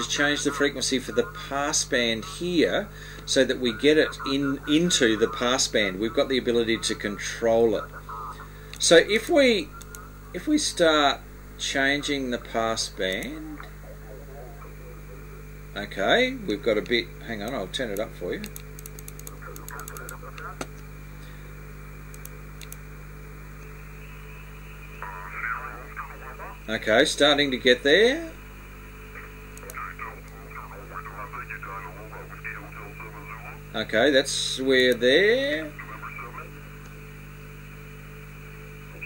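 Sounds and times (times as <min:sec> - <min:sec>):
faint voice over radio: 0:00.0 - 0:10.7, 0:11.6 - 0:16.3, 0:19.3 - 0:20.7, 0:24.7 - 0:28.2, 0:29.0 - 0:36.7
mains hum: 0:00.0 - 0:39.0
radio receiver hiss: 0:00.0 - 0:39.0
faint voice: 0:13.2 - 0:15.4, 0:24.9 - 0:26.8, 0:29.1 - 0:33.7, 0:35.6 - 0:36.6.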